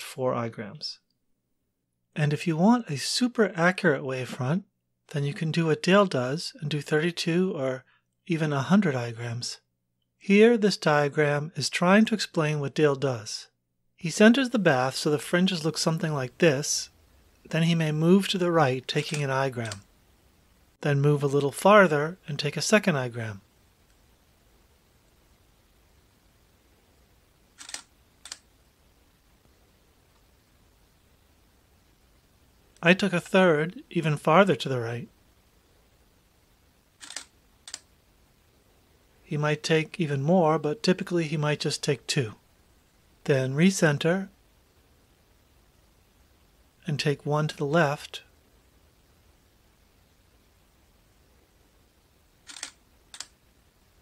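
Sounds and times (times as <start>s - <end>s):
camera shutter clicks: 27.6s - 28.4s, 37.0s - 37.9s, 52.5s - 53.3s.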